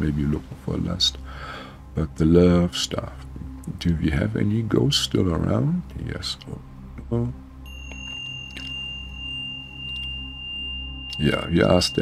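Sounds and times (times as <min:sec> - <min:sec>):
low steady drone: 0:00.0 - 0:12.0
fainter higher tone: 0:07.6 - 0:12.0
high-pitched pure tone: 0:07.6 - 0:12.0.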